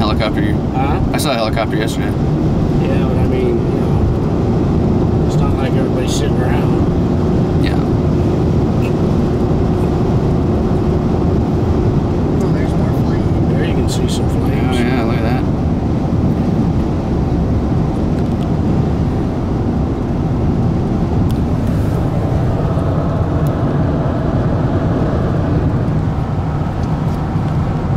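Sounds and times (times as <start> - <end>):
car road and wind noise: 0.0 - 27.9.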